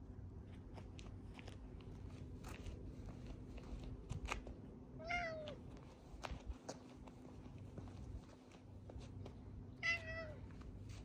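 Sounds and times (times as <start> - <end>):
cat meowing: 5.0 - 5.6, 9.8 - 10.4.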